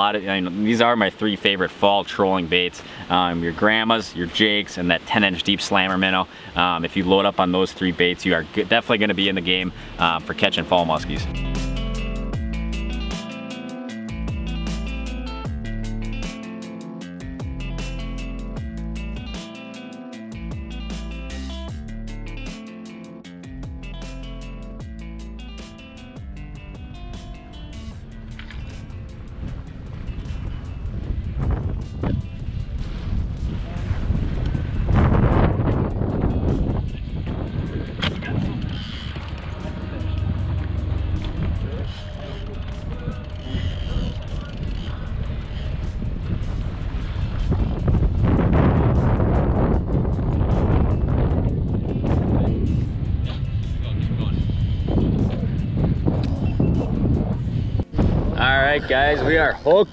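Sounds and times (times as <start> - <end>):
background music: 8.3 - 59.9
wind buffeting microphone: 25.7 - 59.9.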